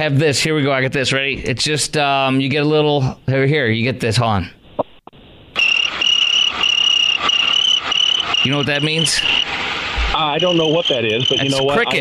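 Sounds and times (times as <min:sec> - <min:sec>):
crickets chirping: 0:05.6 - 0:12.0.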